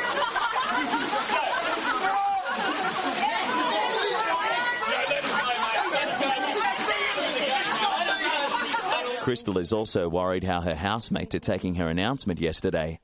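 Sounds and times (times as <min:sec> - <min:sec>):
babble of overlapping voices: 0:00.0 - 0:11.9.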